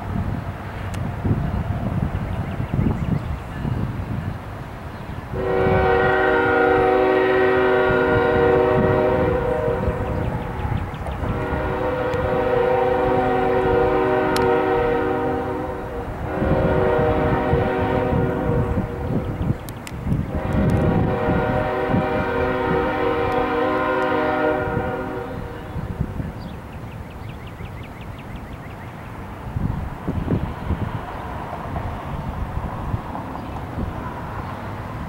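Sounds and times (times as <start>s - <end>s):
low rumble of train: 0.0s - 35.0s
locomotive air horn blasts: 5.3s - 10.2s, 11.2s - 19.3s, 20.3s - 25.9s.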